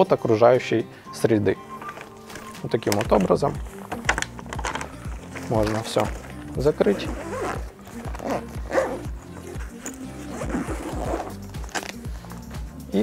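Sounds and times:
background music with beat: 0.0 - 13.0
zipper being drawn shut: 4.0 - 12.1.

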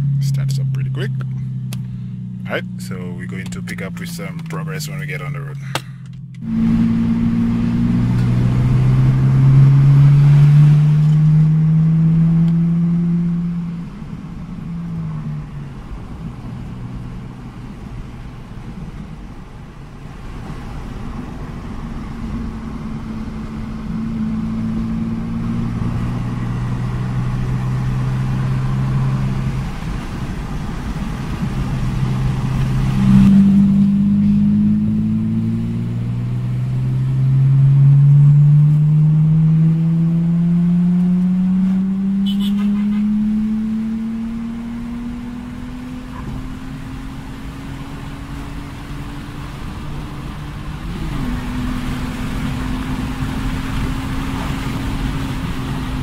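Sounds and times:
car engine accelerating from inside cabin: 0.0 - 19.4, 20.0 - 56.0.

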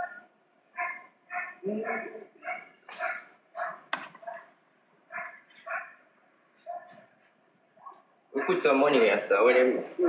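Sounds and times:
dog barking: 0.0 - 6.0, 6.6 - 7.1, 7.8 - 8.9.

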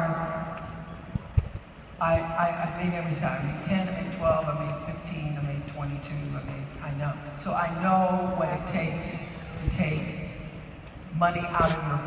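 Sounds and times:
faint hall noise: 0.0 - 12.0.

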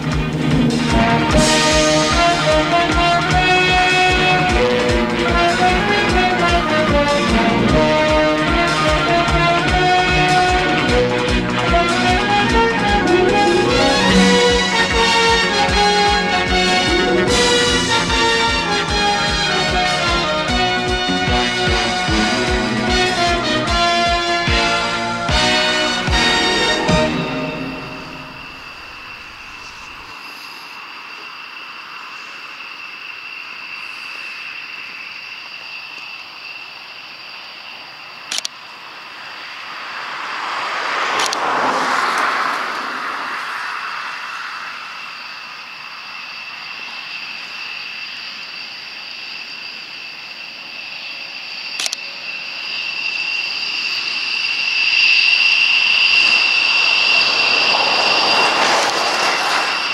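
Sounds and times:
distant jet engines whining: 0.0 - 59.9.

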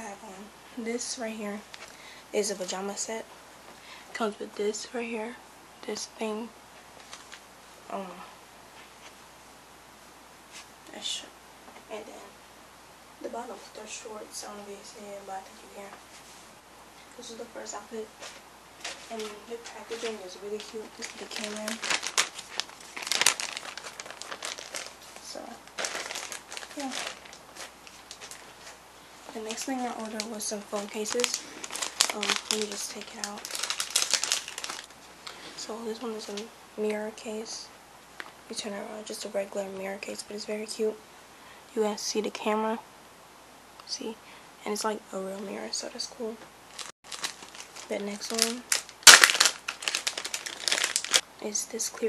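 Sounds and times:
plastic mailer bag crinkling: 7.0 - 7.4, 18.8 - 35.4, 46.7 - 51.2.

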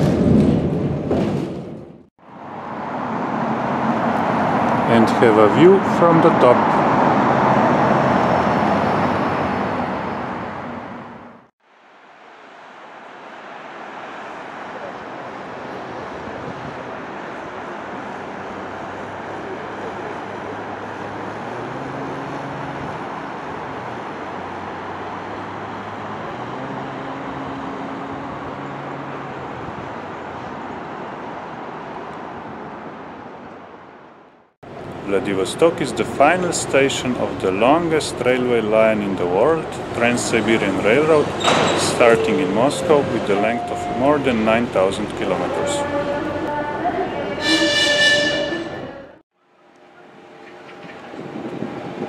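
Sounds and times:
distant city traffic hum: 0.0 - 52.0
vehicle engines droning: 2.2 - 52.0.

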